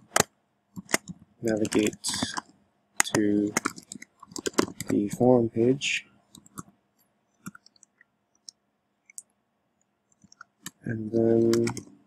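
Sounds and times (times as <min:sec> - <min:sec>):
computer keyboard keystrokes: 0:00.0 - 0:02.4, 0:03.0 - 0:05.1, 0:11.4 - 0:11.9.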